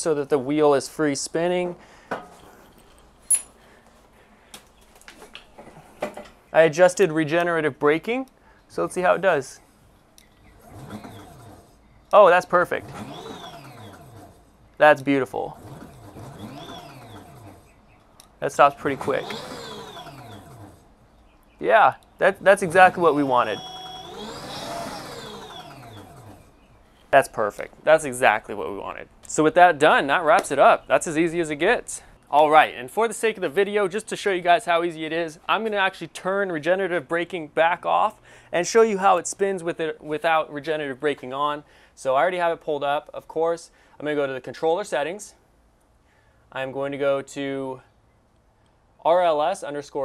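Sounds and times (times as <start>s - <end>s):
high metallic clink: 3.2s - 3.6s
electric motor whining: 10.5s - 17.8s, 18.5s - 21.0s, 22.3s - 26.7s.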